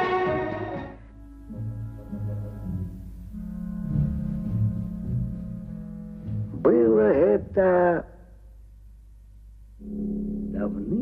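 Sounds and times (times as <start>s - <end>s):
low drone in soundtrack music: 0.9s - 6.6s.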